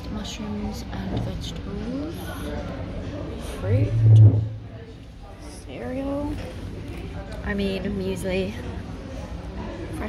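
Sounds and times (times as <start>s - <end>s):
people talking indistinctly: 0.0s - 9.4s
loud low hum: 3.5s - 4.8s.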